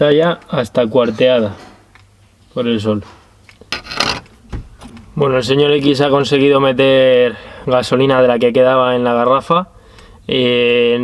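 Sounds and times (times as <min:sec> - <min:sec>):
scraping rustles: 0:03.0 - 0:05.1
dull thump: 0:04.4 - 0:05.0.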